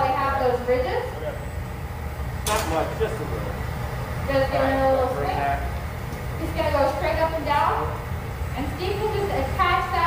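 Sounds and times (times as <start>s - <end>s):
furnace low rumble: 0.0s - 10.0s.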